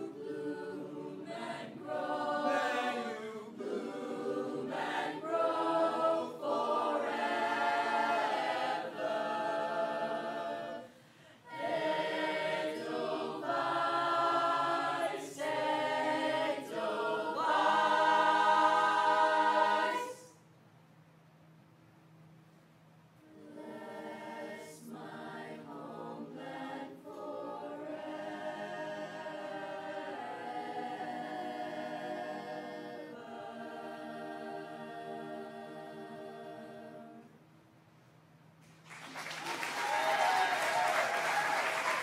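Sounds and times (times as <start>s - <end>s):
choir singing a cappella: 0.0s - 20.4s, 23.2s - 37.5s.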